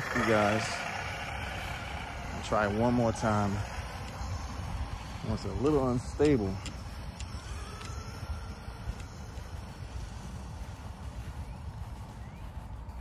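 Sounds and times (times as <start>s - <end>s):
electric motor whine: 0.0s - 13.0s
steady low rumble: 0.0s - 13.0s.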